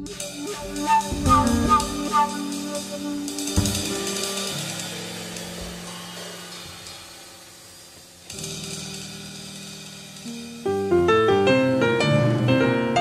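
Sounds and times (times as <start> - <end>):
low piano and bass notes: 0.0 - 7.0, 8.4 - 13.0
cymbals ringing: 0.0 - 10.6.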